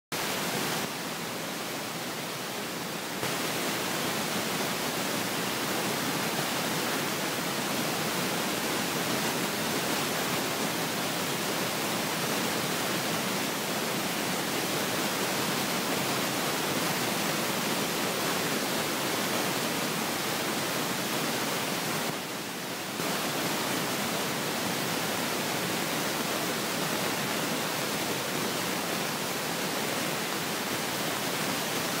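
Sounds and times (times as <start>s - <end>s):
static-like hiss: 0.1s - 32.0s.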